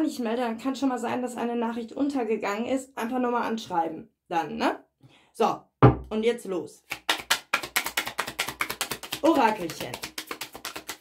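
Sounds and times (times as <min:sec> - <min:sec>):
cards being shuffled: 0:06.9 - 0:11.0.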